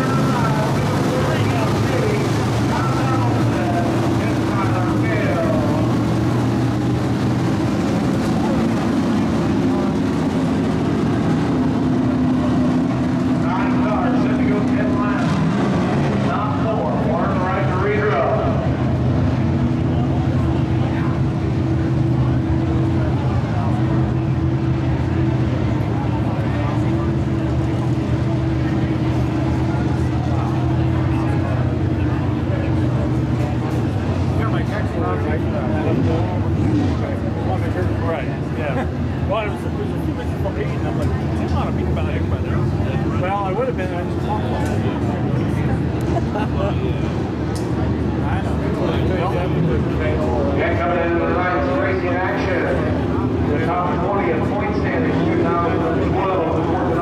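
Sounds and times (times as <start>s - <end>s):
race car engines running hard: 0.0s - 57.0s
voices talking: 0.0s - 57.0s.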